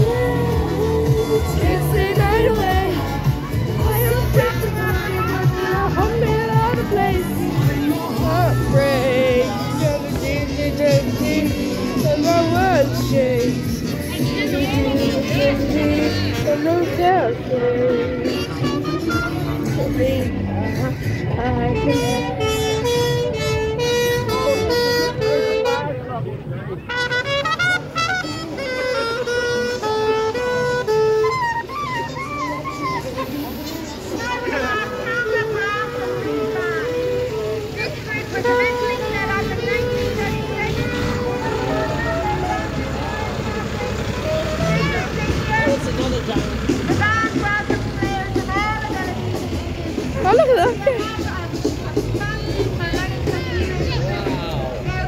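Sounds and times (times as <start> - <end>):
crowd chatter: 0.0 - 55.0
fire engine diesel engine: 0.0 - 55.0.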